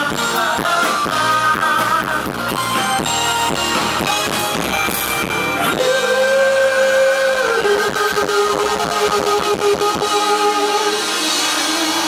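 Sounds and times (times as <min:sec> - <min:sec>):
live pop-rock band music: 0:00.0 - 0:12.0.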